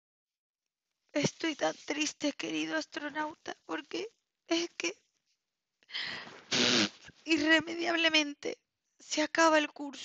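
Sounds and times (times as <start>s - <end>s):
woman blowing her nose: 6.3s - 7.0s.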